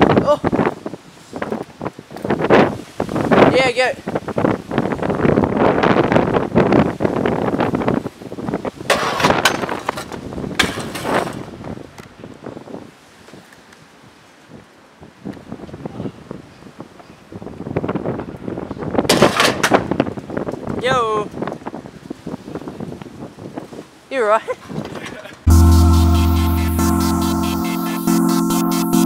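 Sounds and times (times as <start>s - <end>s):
scooter clattering on ground: 8.9s - 11.5s.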